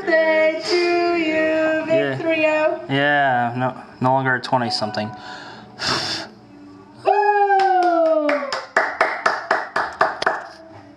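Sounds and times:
people clapping in rhythm: 0:07.5 - 0:10.6.

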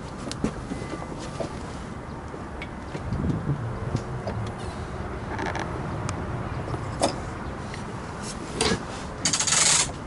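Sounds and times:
low rumble of wind: 0:00.0 - 0:10.0.

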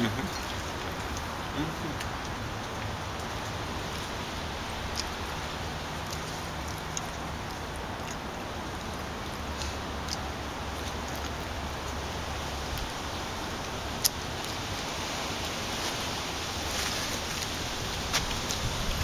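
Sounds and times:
background hiss: 0:00.0 - 0:19.0.

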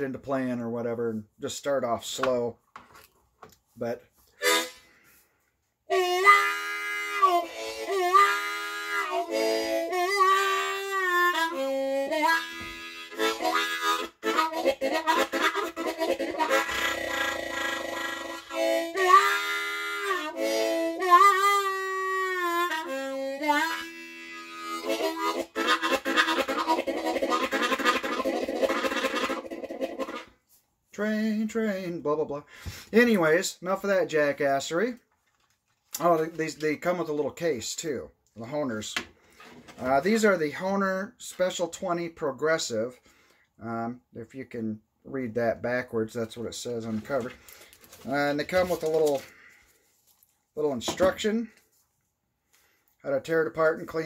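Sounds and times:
harmonica with bent notes: 0:04.2 - 0:30.6.

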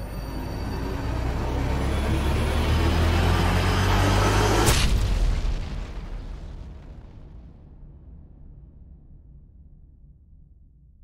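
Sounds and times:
sharp crash: 0:04.6 - 0:07.8.

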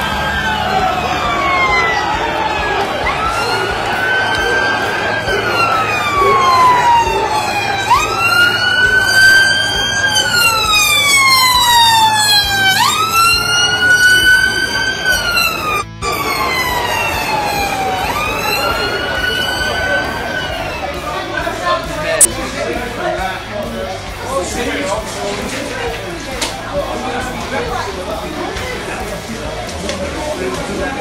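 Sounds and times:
police siren wailing: 0:00.0 - 0:22.3.

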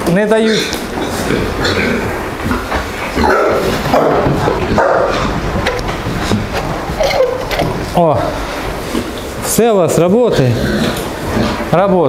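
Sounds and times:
pigs grunting: 0:00.0 - 0:12.0.

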